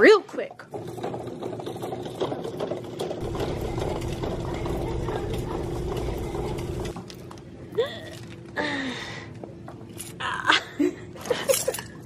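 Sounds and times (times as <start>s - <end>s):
woman giggling: 10.2s - 12.0s.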